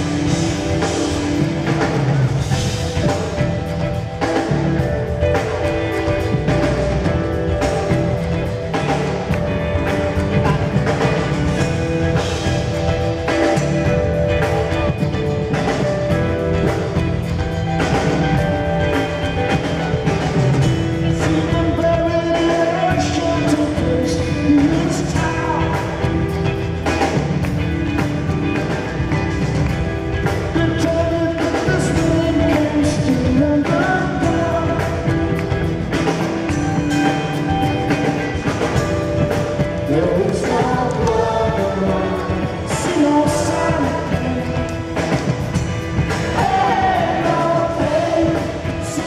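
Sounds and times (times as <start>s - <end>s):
drum kit beat: 0.0s - 49.0s
live rock band: 0.0s - 49.0s
sustained guitar chords: 0.0s - 49.0s
male lead vocal singing: 21.0s - 26.5s, 30.4s - 35.6s, 39.8s - 49.0s.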